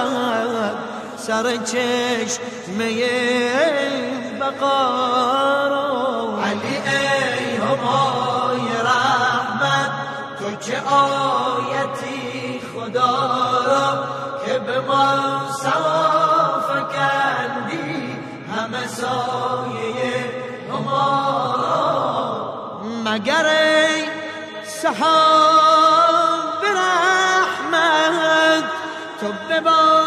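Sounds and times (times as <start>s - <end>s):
person chanting a devotional song: 0.0s - 30.0s.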